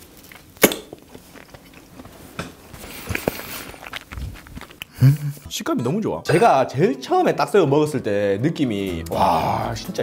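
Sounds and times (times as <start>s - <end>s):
man chewing shrimp: 0.0s - 2.2s, 2.8s - 5.4s.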